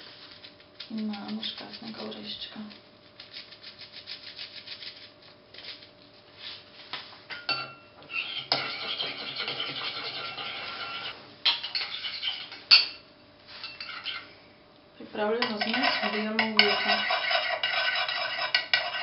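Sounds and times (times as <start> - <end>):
spoon scraping ceramic bowl: 8.1 - 12.8, 13.5 - 14.3, 15.4 - 19.0.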